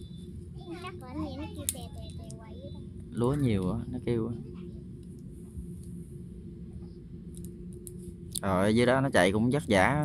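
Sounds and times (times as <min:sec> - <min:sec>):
voices talking: 0:00.0 - 0:04.9
combine harvester engine running: 0:00.0 - 0:10.0.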